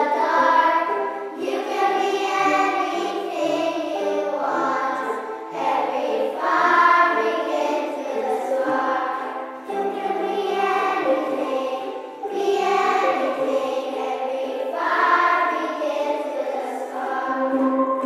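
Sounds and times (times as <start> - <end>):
children's choir singing: 0.0 - 18.0
ukuleles: 0.0 - 18.0
wooden xylophones: 0.0 - 18.0.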